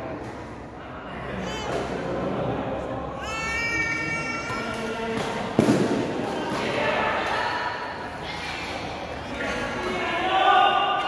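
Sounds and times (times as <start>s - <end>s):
spectator chatter: 0.0s - 11.0s.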